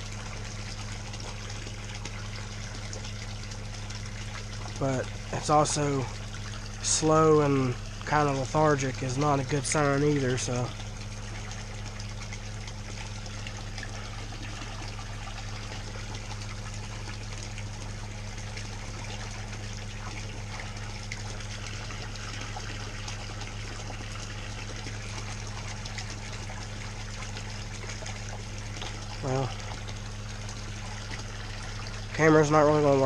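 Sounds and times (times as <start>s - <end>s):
low hum: 0.0s - 33.0s
water splashing into pond: 0.0s - 33.0s.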